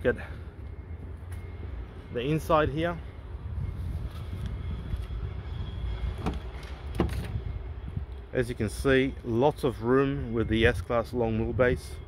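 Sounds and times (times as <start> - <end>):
car door handle and latch clicks: 6.2 - 7.3.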